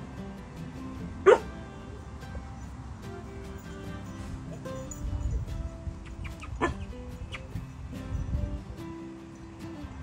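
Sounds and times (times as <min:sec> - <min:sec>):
dog yipping: 0:01.2 - 0:01.5, 0:04.1 - 0:07.8.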